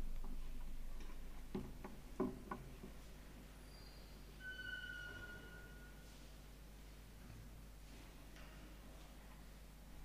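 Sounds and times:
soft irregular clicks and knocks: 0.0 - 3.1, 7.2 - 9.5.

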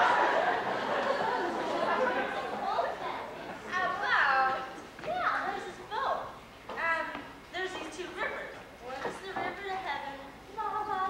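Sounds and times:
audience laughter: 0.0 - 3.7
murmured chatter: 0.0 - 11.0.

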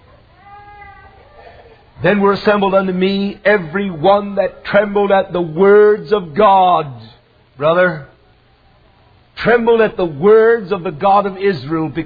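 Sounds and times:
faint high-pitched voice-like cry: 0.0 - 1.9.

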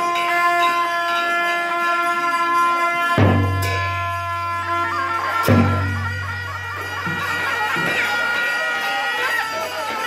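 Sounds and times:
drums: 2.8 - 8.7.

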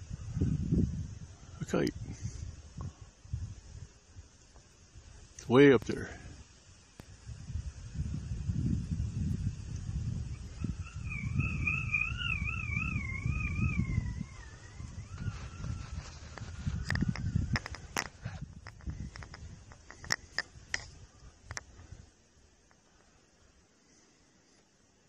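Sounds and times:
wind buffeting microphone: 0.0 - 22.1.

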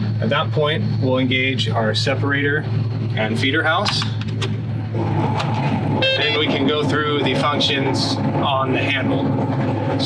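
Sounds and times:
combine harvester low hum: 0.0 - 10.0
machinery whirring: 0.0 - 10.0.

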